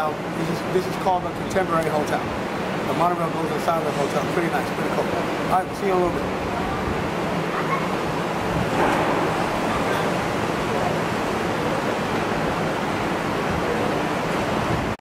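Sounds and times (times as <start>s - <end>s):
faint voices: 3.4s - 14.4s
wind on microphone: 6.2s - 15.0s.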